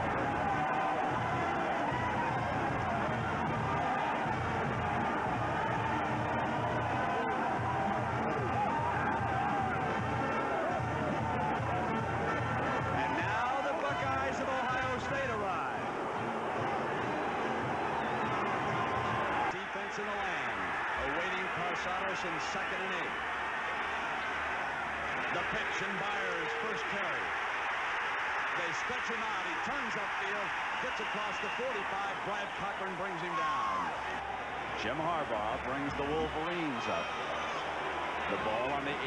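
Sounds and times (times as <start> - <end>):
stadium crowd cheering: 0.0 - 39.0.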